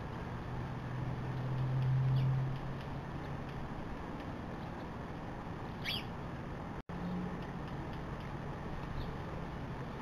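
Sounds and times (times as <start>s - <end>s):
short high bird chirp: 5.8s - 6.1s.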